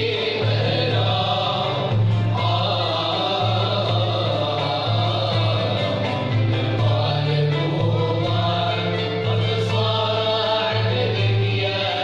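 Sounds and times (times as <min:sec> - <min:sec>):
lutes and strings ensemble: 0:00.0 - 0:12.0
musicians singing in unison: 0:00.0 - 0:12.0.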